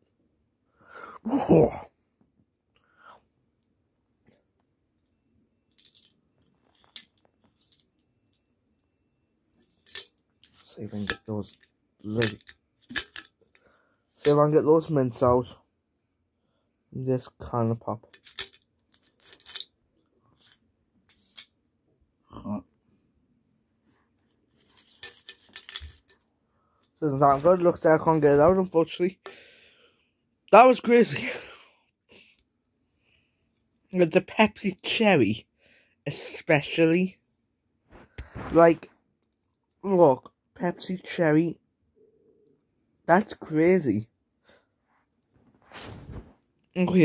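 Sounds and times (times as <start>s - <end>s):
mints rattling in drink can: 24.6s - 26.2s.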